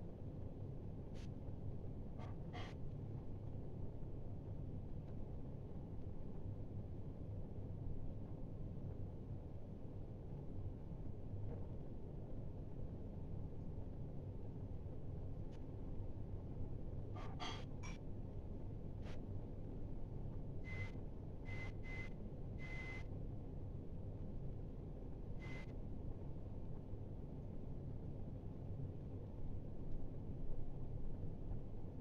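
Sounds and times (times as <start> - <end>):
steady low room hum: 0.0 - 32.0.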